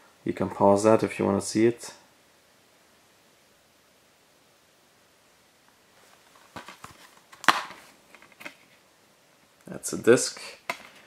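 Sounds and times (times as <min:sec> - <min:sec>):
plastic case clicks: 0:06.5 - 0:08.6, 0:10.6 - 0:11.0
plastic case snapping open: 0:06.5 - 0:08.6.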